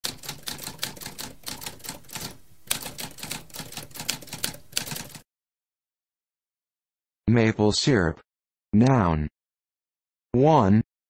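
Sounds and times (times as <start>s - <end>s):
typewriter keys clicking: 0.0s - 5.2s.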